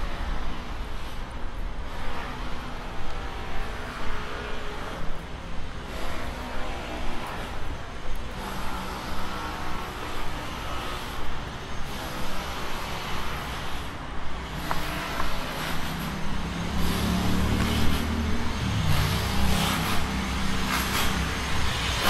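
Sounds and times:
vehicle engine humming: 0:00.4 - 0:22.0.

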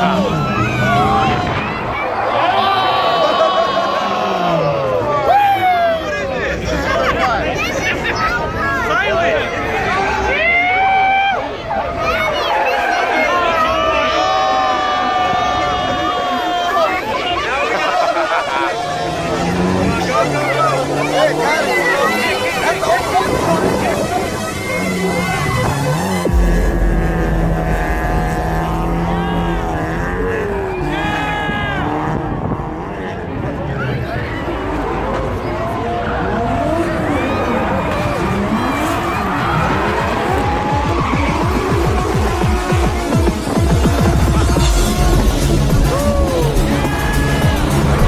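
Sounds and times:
car tyres screeching: 0:00.0 - 0:05.0, 0:13.7 - 0:48.0
crowd cheering and talking: 0:00.0 - 0:48.0.

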